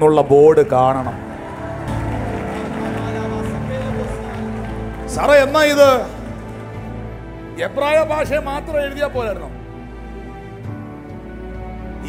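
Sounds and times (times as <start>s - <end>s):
sustained music chords: 1.0s - 8.7s
person preaching: 2.9s - 6.3s.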